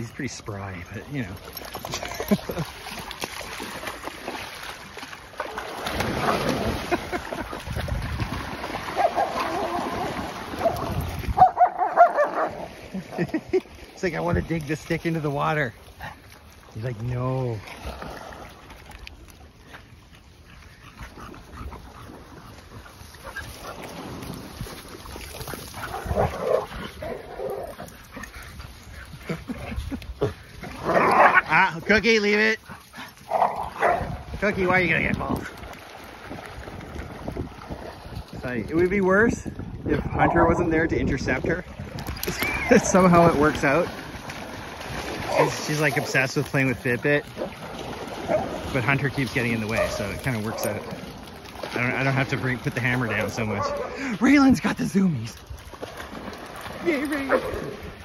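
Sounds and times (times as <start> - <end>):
dogs splashing through water: 0.0 - 58.0
wind buffeting microphone: 6.0 - 12.7, 20.8 - 31.2, 33.2 - 45.6.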